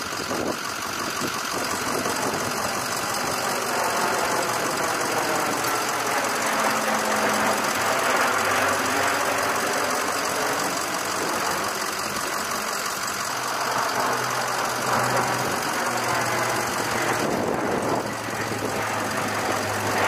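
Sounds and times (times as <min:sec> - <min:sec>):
turboprop aircraft drone: 0:00.0 - 0:20.0.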